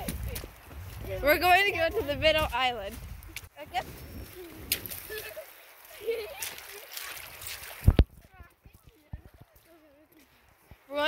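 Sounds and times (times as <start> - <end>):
footsteps splashing through water: 0.0 - 11.0.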